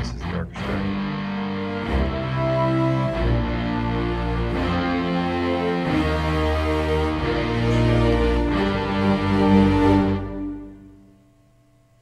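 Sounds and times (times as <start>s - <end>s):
orchestral strings: 0.0s - 11.0s.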